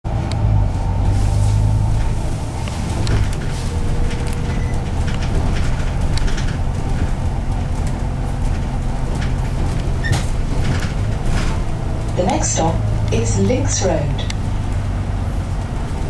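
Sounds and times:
bus engine drone: 0.0 - 16.0
bodywork rattling and clicking: 1.9 - 16.0.

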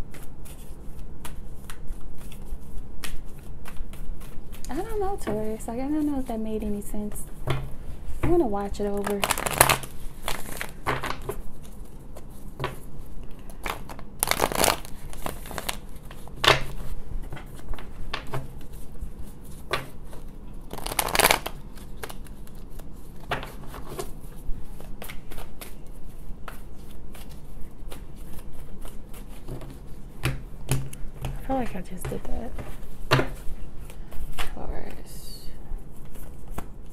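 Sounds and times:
cards shuffled on wooden table: 13.5 - 34.6.

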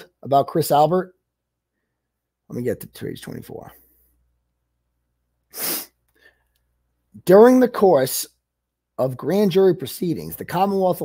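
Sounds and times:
man breathing: 5.5 - 6.8.

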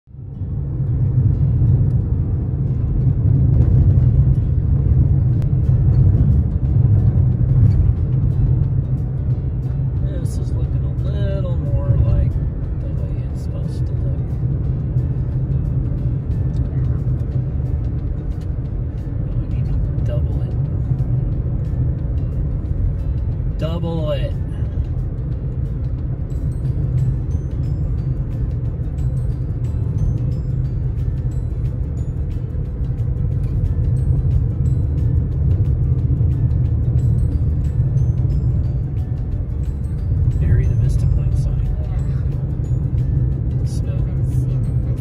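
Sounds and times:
car interior driving rumble: 0.1 - 45.0.

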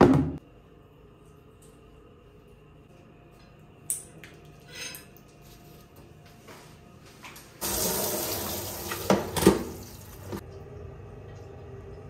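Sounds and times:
water running into plastic basin: 7.6 - 12.0.

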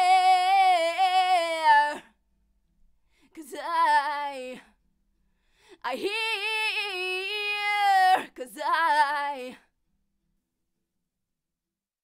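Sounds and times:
woman singing: 0.0 - 2.2, 3.2 - 4.8, 5.7 - 9.7.

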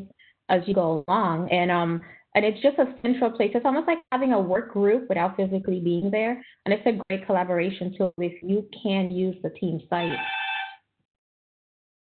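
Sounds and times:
electronic ringing tone: 10.0 - 10.8.

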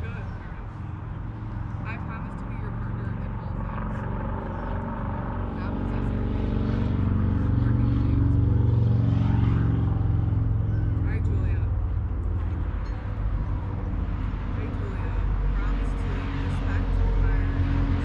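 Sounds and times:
faint voices: 0.0 - 18.0
low engine drone: 0.0 - 18.0.

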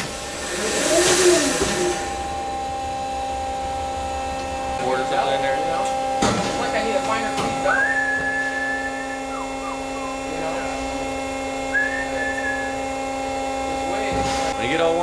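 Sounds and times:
band saw running: 0.0 - 15.0
high held whistle: 7.7 - 10.3, 11.7 - 13.0.

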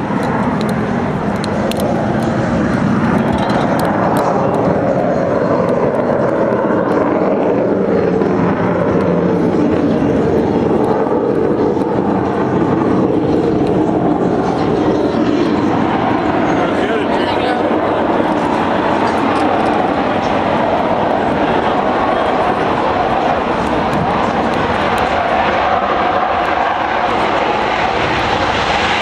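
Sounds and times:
jet engines roaring: 0.0 - 29.0.

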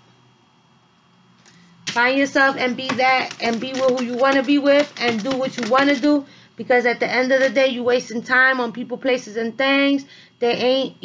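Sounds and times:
woman speaking: 1.9 - 11.0.

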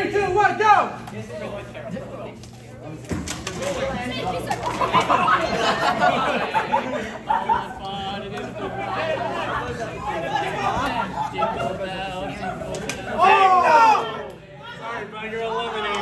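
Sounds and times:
people chattering and calling out: 0.0 - 16.0.

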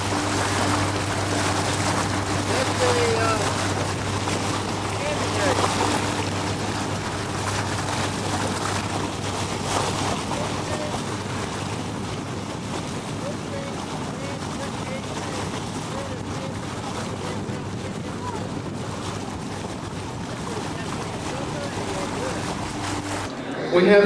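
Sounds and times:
motorboat engine drone: 0.0 - 24.0
faint voices: 13.2 - 18.8, 20.0 - 24.0.

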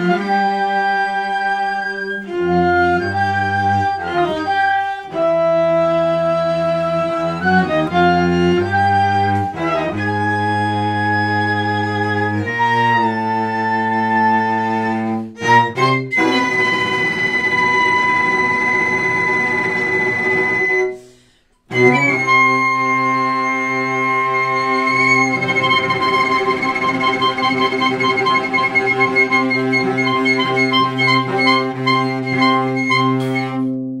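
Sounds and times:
chamber ensemble playing: 0.0 - 21.0, 21.7 - 34.0
low cello line: 0.0 - 34.0.

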